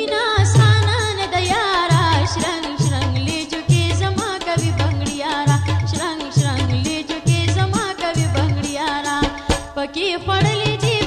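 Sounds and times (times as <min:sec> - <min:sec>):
person singing folk song: 0:00.0 - 0:11.0.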